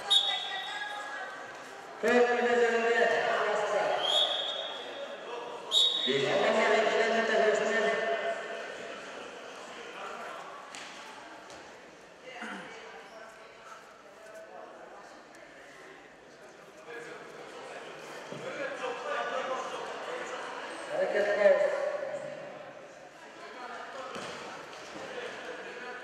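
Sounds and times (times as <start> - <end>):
voices echoing in sports hall: 0.0 - 26.0.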